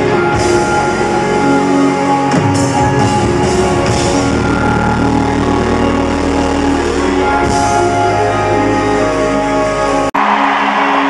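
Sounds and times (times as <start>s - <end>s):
live pop-rock band playing: 0.0s - 10.8s.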